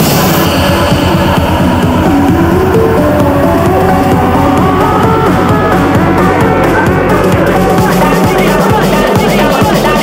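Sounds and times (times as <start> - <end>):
fast-pulsing bass: 0.0 - 10.0
synth melody: 0.2 - 10.0.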